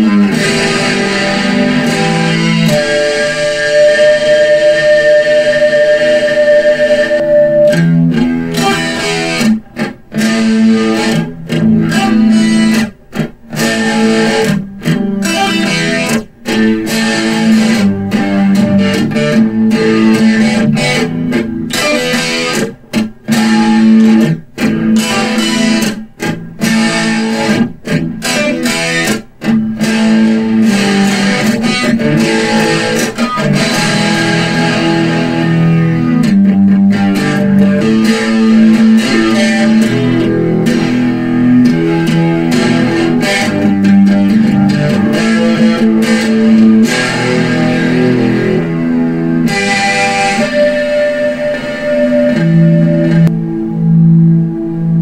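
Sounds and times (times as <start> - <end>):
electric guitar playing rock: 0.0 - 55.0.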